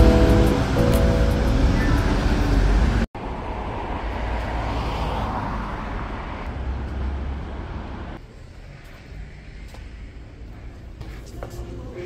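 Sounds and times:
passing cars rumbling: 0.0s - 8.2s.

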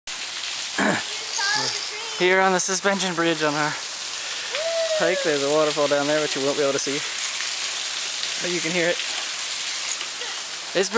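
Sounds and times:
waterfall rushing hiss: 0.2s - 10.9s.

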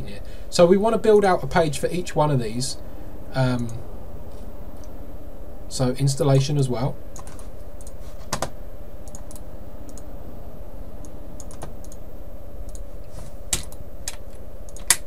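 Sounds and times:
low background hum: 0.0s - 15.0s
keyboard typing: 7.1s - 10.0s, 11.4s - 12.0s, 13.5s - 15.0s.

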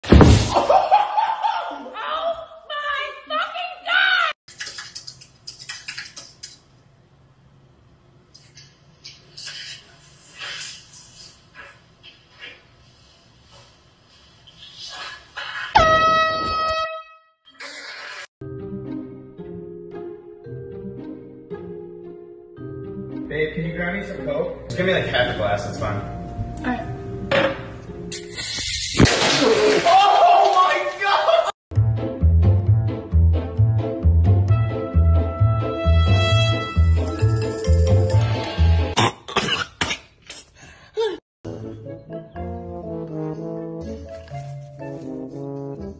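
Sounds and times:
air horn blast: 15.8s - 17.3s, 34.5s - 37.0s
man coughing: 39.0s - 40.1s.

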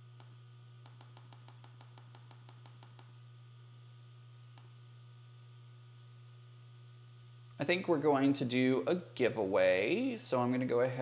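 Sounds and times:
steady low hum: 0.0s - 11.0s
laptop keyboard typing: 0.2s - 3.1s.

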